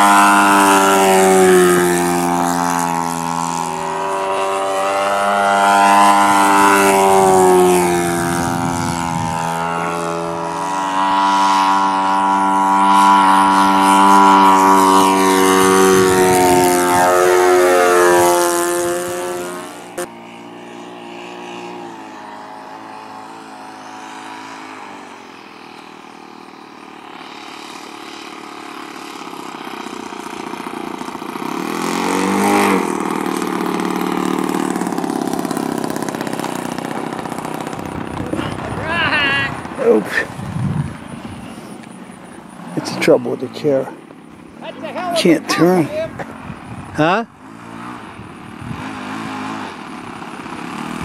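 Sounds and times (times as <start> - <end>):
model airplane engine buzzing: 0.0 - 51.0.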